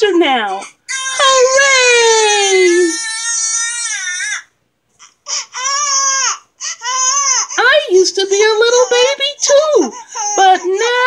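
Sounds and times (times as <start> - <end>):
baby crying: 0.5 - 7.9, 8.6 - 11.0.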